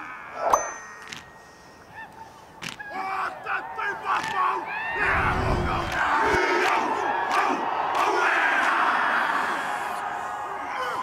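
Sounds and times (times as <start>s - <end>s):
stadium crowd: 2.0s - 11.0s
men chanting and shouting in unison: 2.9s - 11.0s.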